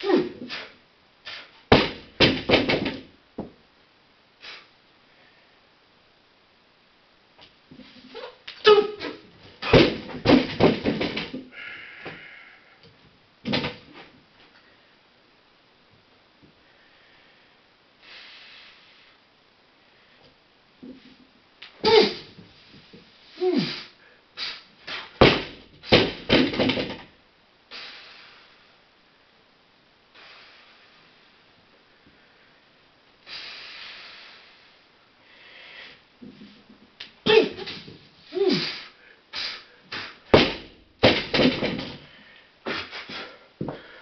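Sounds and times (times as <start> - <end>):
weight plates thudding on floor: 1.7 - 3.5, 9.0 - 12.2, 25.2 - 27.1, 40.3 - 42.1.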